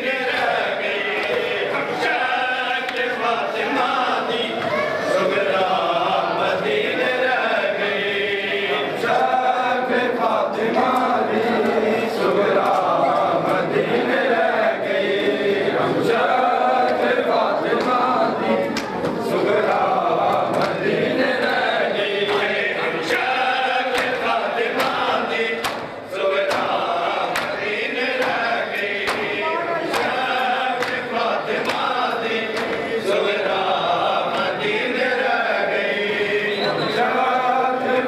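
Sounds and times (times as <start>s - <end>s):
men chanting a lament: 0.0s - 38.0s
hands slapping chests: 23.9s - 32.8s.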